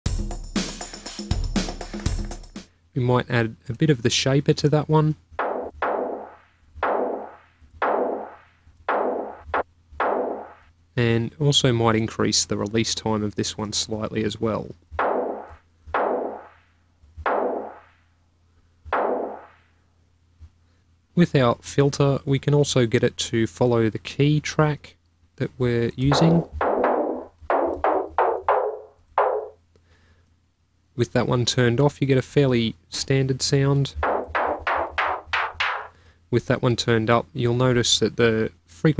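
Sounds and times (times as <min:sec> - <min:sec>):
distorted snare drum hits: 0:05.4 - 0:10.7, 0:15.0 - 0:16.6, 0:17.3 - 0:18.0, 0:18.9 - 0:19.6, 0:26.1 - 0:29.6, 0:34.0 - 0:36.0.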